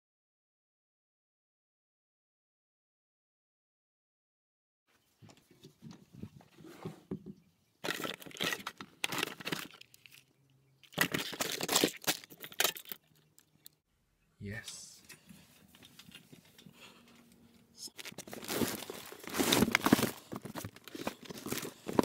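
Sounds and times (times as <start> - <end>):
plastic packaging crinkling: 10.8 - 13.7, 17.9 - 22.0.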